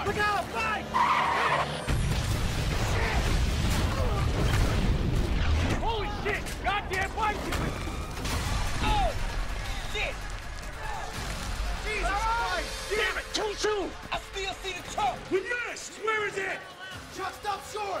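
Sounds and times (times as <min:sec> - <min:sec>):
explosion blast: 0:01.9 - 0:05.9, 0:07.8 - 0:10.3.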